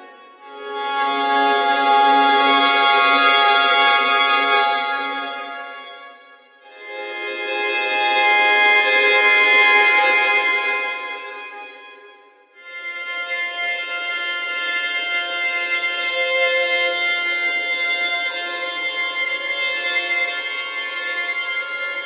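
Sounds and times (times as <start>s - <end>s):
bowed violin: 0.0s - 22.0s.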